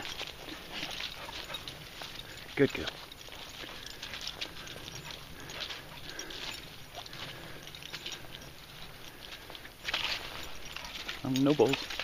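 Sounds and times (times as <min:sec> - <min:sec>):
footsteps on muddy leafy track: 0:00.0 - 0:12.0.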